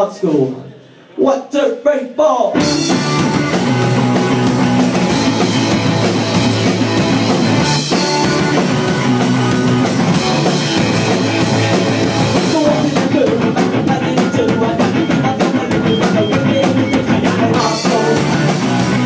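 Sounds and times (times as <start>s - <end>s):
punk rock band playing: 2.5s - 19.0s
drum strokes: 2.6s - 19.0s.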